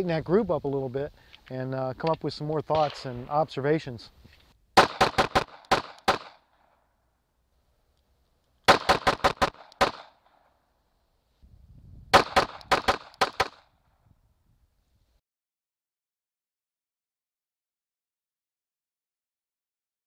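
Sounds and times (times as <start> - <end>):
pistol shots: 2.7 - 3.5, 4.8 - 6.5, 8.7 - 10.2, 12.1 - 13.6.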